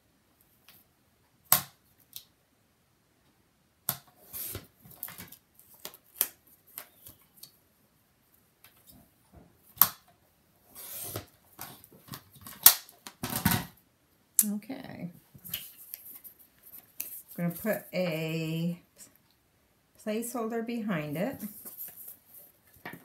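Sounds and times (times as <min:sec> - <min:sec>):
paper trimmer scraping: 0:10.8 - 0:11.3.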